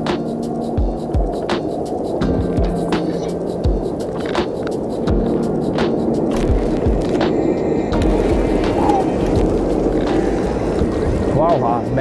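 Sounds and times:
held bass notes: 0:08.0 - 0:11.6.

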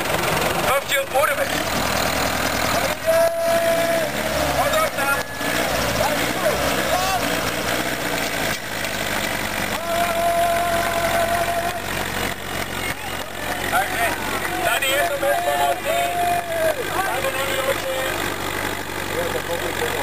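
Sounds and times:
crowd voices: 0:00.0 - 0:20.0
tractor engine under load: 0:00.0 - 0:20.0.

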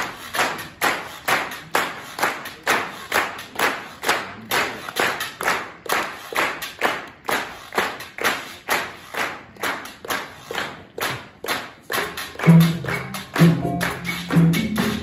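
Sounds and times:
audience clapping in time: 0:00.0 - 0:15.0.

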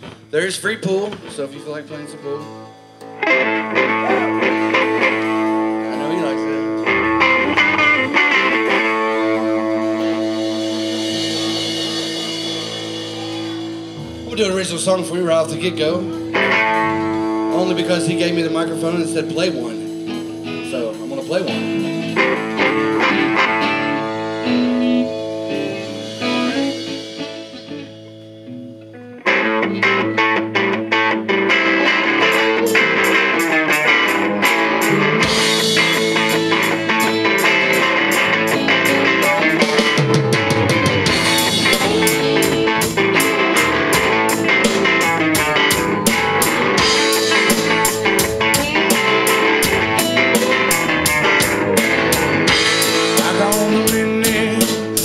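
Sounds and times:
bass guitar: 0:00.0 - 0:55.0
drum kit: 0:00.0 - 0:55.0
electric guitars: 0:00.0 - 0:55.0.

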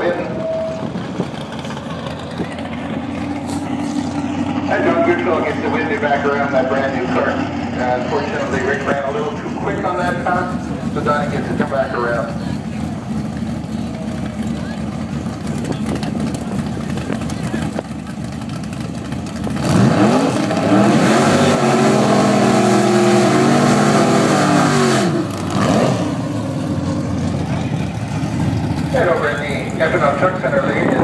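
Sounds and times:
engines idling: 0:00.0 - 0:31.0
engine revving high: 0:19.4 - 0:26.5.

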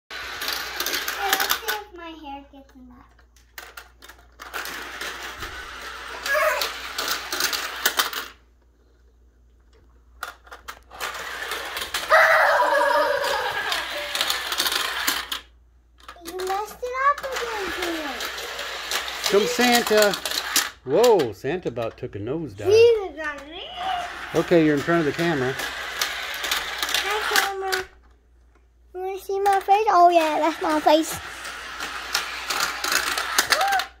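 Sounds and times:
plastic toy parts clicking and rattling: 0:00.1 - 0:08.4, 0:09.7 - 0:22.0, 0:22.7 - 0:28.2, 0:29.2 - 0:34.0.

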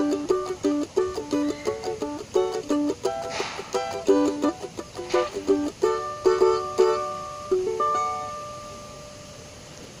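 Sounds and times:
strummed acoustic guitar chord: 0:02.6 - 0:09.1.

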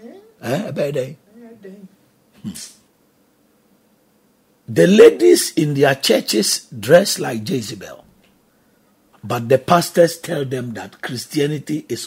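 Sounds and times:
person speaking: 0:00.0 - 0:02.8, 0:04.7 - 0:08.1, 0:09.2 - 0:12.0.

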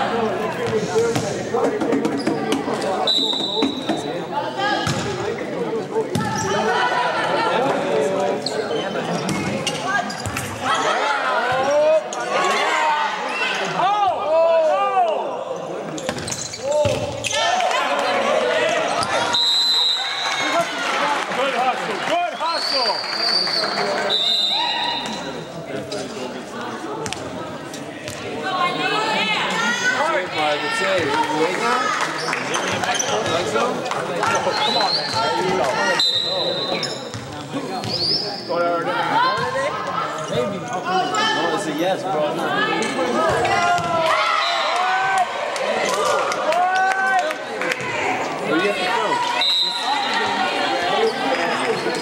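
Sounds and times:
referee's whistle: 0:03.0 - 0:04.1, 0:19.2 - 0:20.4, 0:22.4 - 0:25.3, 0:36.0 - 0:37.0, 0:49.2 - 0:50.3
people shouting and cheering: 0:09.9 - 0:15.8, 0:16.6 - 0:25.4, 0:28.2 - 0:36.8, 0:42.3 - 0:52.0.

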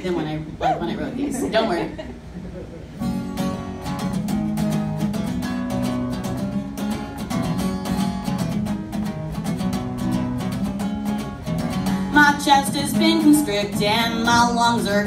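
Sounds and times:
acoustic guitar chords: 0:02.9 - 0:15.0.

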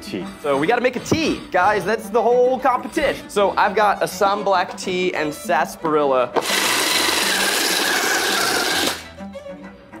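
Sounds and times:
blade rasping hard root: 0:06.4 - 0:09.1
food processor motor whine: 0:06.4 - 0:09.1.

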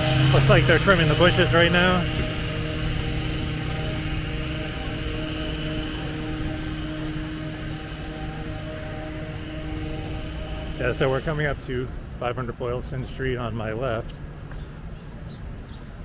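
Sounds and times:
hedge trimmer engine running: 0:00.0 - 0:13.9.

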